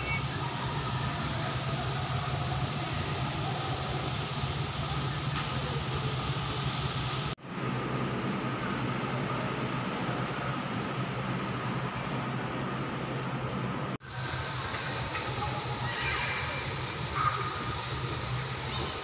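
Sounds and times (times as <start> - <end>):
mechanical hum with hiss: 0.0 - 19.0.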